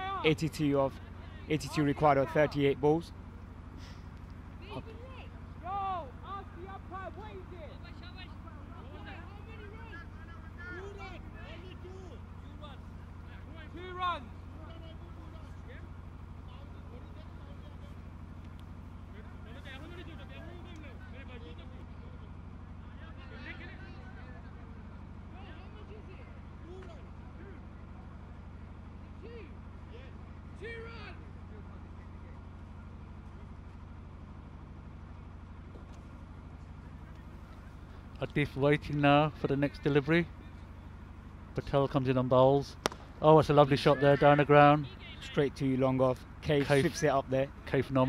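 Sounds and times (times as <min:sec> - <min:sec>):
distant players calling: 0:00.0 - 0:48.0
steady low hum: 0:00.0 - 0:48.0.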